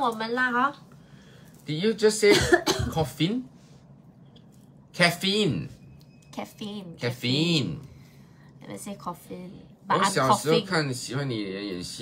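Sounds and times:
person coughing: 0:02.2 - 0:03.1.

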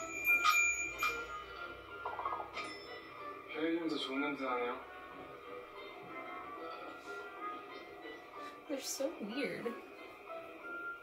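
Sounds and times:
bright bell chime: 0:00.0 - 0:03.3
music: 0:00.0 - 0:11.0.

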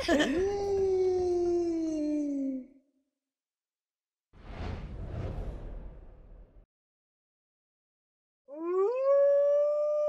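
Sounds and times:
cartoon voice wolf howl: 0:08.5 - 0:10.0.

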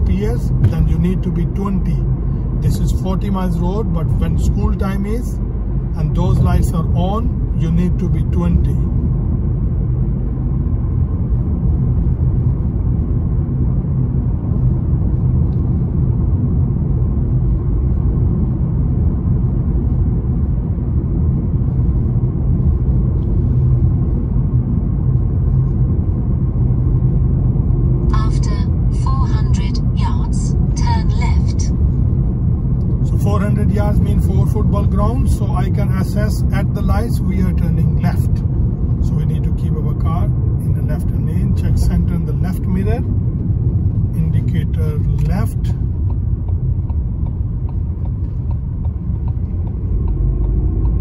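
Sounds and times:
car engine and tyres rumbling: 0:00.0 - 0:51.0.

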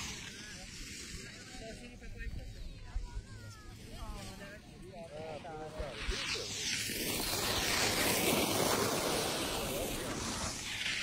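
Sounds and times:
faint voices: 0:00.0 - 0:11.0
skis sliding over snow: 0:00.0 - 0:11.0.

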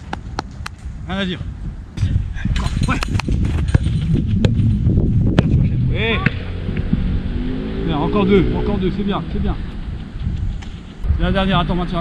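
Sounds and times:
football being kicked: 0:03.1 - 0:04.7, 0:05.3 - 0:05.6
loud low rumble: 0:03.4 - 0:12.0.

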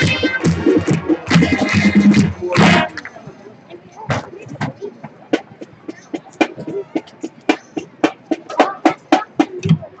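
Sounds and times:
marching band brass over drums: 0:00.0 - 0:03.1.

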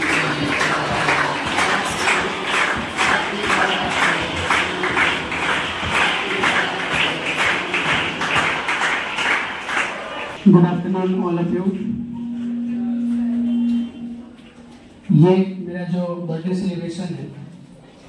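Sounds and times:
children singing: 0:00.0 - 0:10.2
children clapping in time: 0:00.0 - 0:15.1.

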